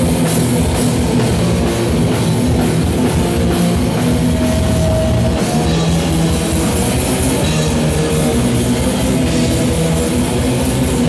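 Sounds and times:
distorted electric guitars: 0.0s - 11.0s
rapid drumming on a drum kit: 0.0s - 11.0s.

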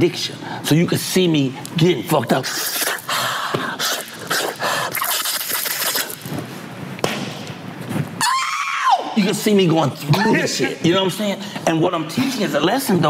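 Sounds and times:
high-pitched wail: 8.2s - 9.2s.

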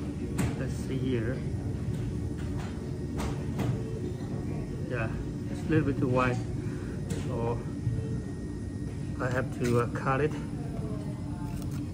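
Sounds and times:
electric potter's wheel humming: 0.0s - 11.9s.

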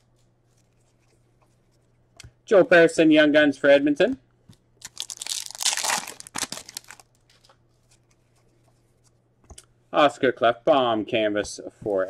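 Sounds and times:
foil wrapper tearing and crinkling: 4.8s - 7.5s.

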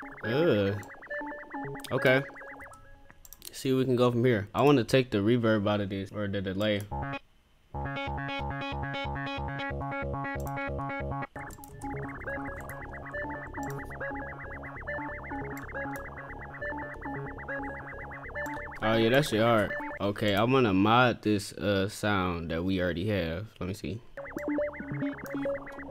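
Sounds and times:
pulsing synth chord melody: 0.0s - 3.0s, 6.9s - 7.2s, 7.8s - 20.0s, 24.2s - 25.9s.

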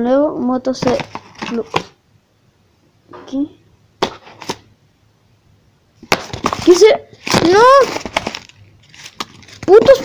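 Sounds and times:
tissue paper crackling: 6.3s - 10.0s.

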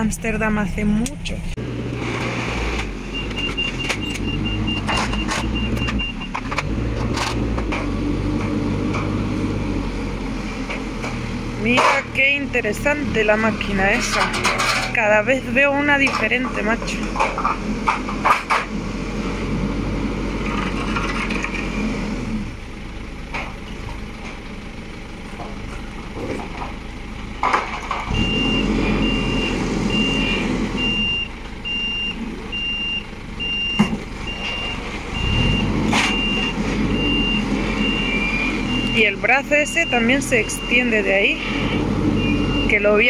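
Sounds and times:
telehandler engine revving: 0.0s - 43.0s
reversing alarm beeping: 3.0s - 6.4s, 28.1s - 43.0s.

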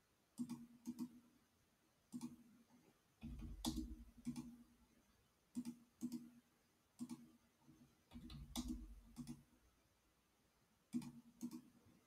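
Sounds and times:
computer mouse clicking: 0.4s - 1.2s, 2.1s - 2.4s, 3.2s - 4.6s, 5.5s - 6.4s, 7.0s - 7.3s, 8.1s - 9.5s, 10.9s - 11.8s.

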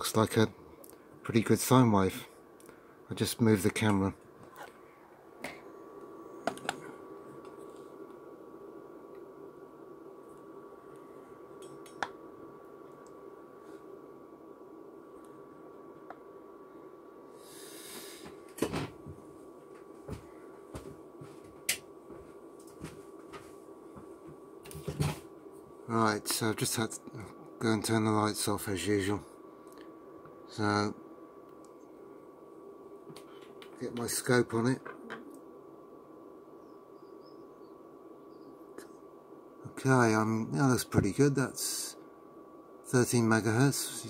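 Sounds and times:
faint thin steady tone: 0.0s - 20.6s
room hum: 0.0s - 44.0s
short hiss: 17.4s - 18.5s.

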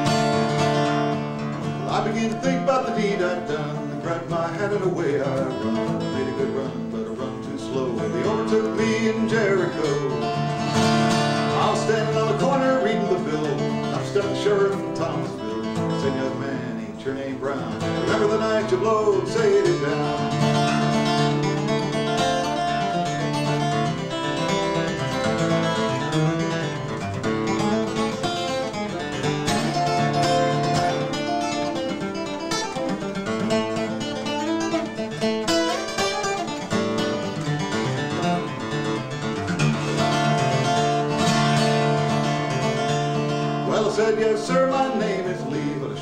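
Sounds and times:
acoustic guitar flatpicking: 0.0s - 46.0s.

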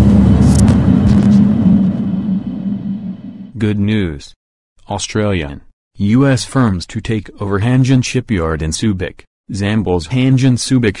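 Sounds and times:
loud deep rumble: 0.0s - 3.6s
steady low hum: 0.0s - 3.6s.

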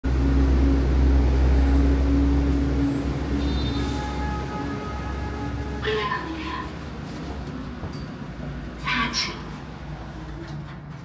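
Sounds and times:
lift rumble and hum: 0.0s - 11.0s
recorded voice announcing: 5.8s - 6.8s, 8.8s - 9.5s.

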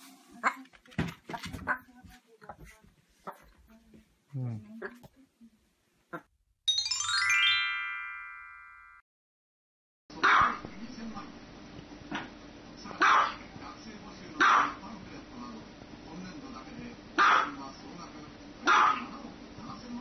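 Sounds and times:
dog barking: 10.2s - 10.6s, 13.0s - 13.4s, 14.4s - 14.8s, 17.2s - 17.6s, 18.6s - 19.1s.

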